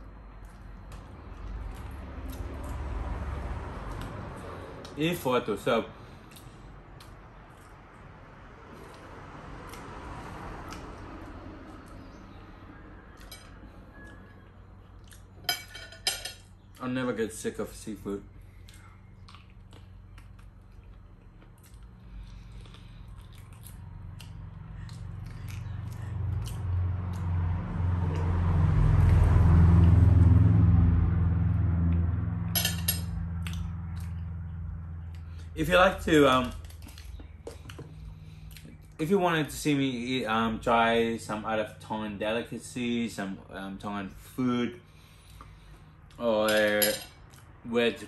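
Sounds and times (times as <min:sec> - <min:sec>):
low steady rumble: 0:00.0 - 0:48.0
man chewing and sucking fish: 0:18.4 - 0:30.0.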